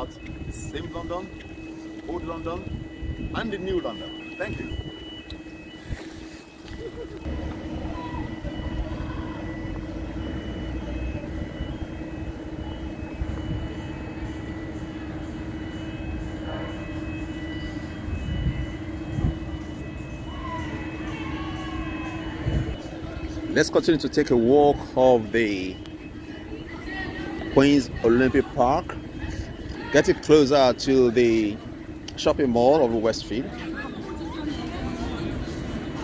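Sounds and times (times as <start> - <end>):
faint high beep: 0.0 - 36.0
steady low hum: 0.0 - 36.0.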